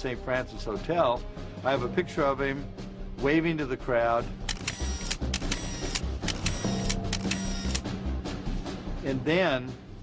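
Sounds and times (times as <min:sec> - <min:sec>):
low background music: 0:00.0 - 0:10.0
camera shutters clicking: 0:04.5 - 0:07.9.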